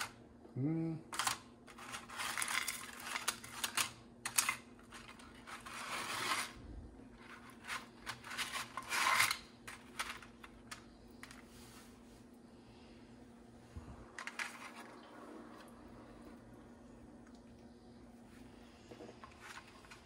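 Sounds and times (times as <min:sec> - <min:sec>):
pasta sheets scraping and rustling: 0:01.2 - 0:12.1, 0:14.1 - 0:15.8, 0:18.8 - 0:20.0.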